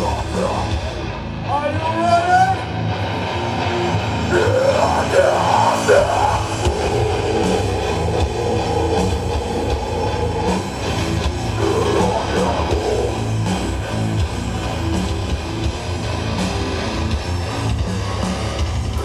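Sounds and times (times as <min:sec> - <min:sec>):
distorted electric guitars: 0:00.0 - 0:19.0
drums: 0:00.0 - 0:19.0
low bass: 0:00.0 - 0:19.0.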